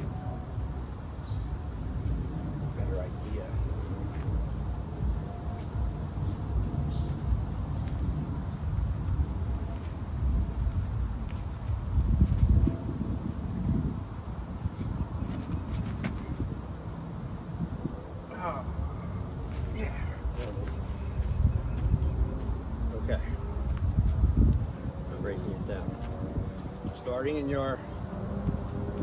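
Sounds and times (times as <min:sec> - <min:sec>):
wind rumbling on microphone: 0:00.0 - 0:29.0.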